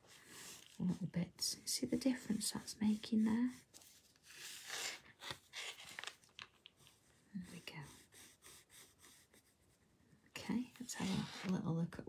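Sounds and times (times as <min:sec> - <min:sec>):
pencil scratching on paper: 0:00.0 - 0:05.0, 0:06.8 - 0:11.6.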